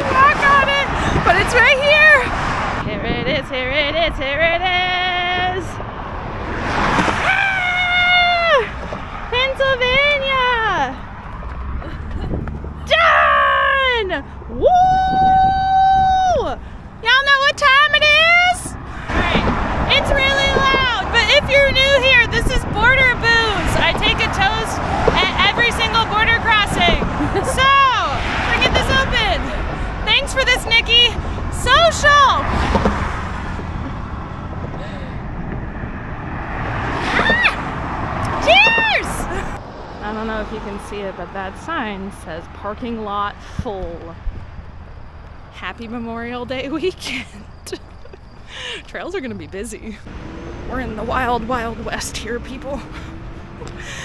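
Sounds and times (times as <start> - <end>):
woman calling excitedly: 0.0 - 2.3, 7.2 - 8.8, 9.4 - 11.0, 12.8 - 32.5, 37.1 - 37.6, 38.3 - 39.6
road traffic noise: 0.0 - 54.0.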